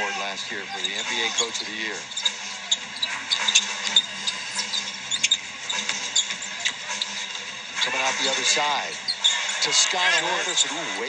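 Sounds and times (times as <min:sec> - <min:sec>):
arena crowd hum: 0:00.0 - 0:11.0
sneakers squeaking: 0:00.7 - 0:10.6.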